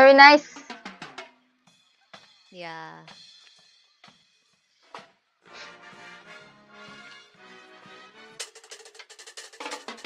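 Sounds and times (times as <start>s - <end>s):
steady drum beats: 0.0s - 1.4s, 8.4s - 10.0s
marching band chords: 5.5s - 10.0s.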